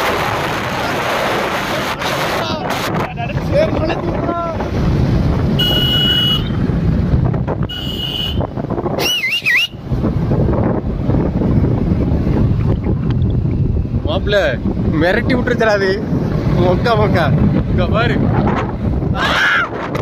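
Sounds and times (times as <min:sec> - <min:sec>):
wind buffeting microphone: 0:00.0 - 0:20.0
horn beeps: 0:05.6 - 0:06.6, 0:07.6 - 0:09.8
wavering whistle-like tone: 0:09.0 - 0:09.8.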